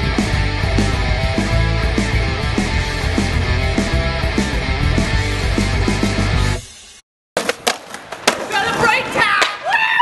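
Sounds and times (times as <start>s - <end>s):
skateboard clacks: 7.4s - 9.6s
skateboard wheels rolling on concrete: 7.4s - 10.0s.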